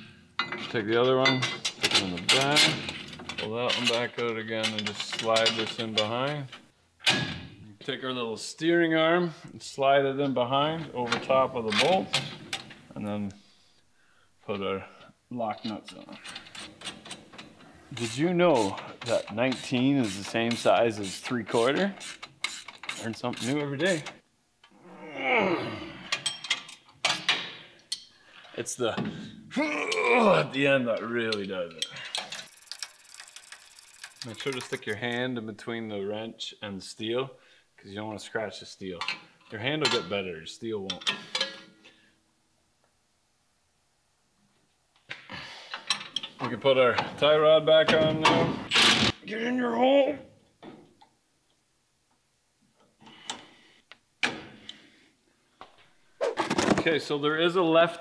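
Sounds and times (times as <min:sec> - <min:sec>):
wrench clicking: 0:22.0 - 0:24.1, 0:32.4 - 0:35.0
man's vocal sound sliding down: 0:24.8 - 0:26.0.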